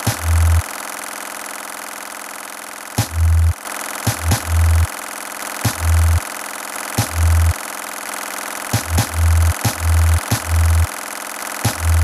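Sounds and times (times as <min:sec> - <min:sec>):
buzzing electronic drone: 0:00.0 - 0:00.6, 0:03.0 - 0:03.6, 0:04.2 - 0:04.9, 0:05.7 - 0:06.2, 0:07.0 - 0:07.6, 0:08.8 - 0:10.9, 0:11.6 - 0:12.0
deep bass notes: 0:00.1 - 0:00.6, 0:03.1 - 0:03.6, 0:04.2 - 0:04.9, 0:05.7 - 0:06.2, 0:07.0 - 0:07.5, 0:08.9 - 0:10.9.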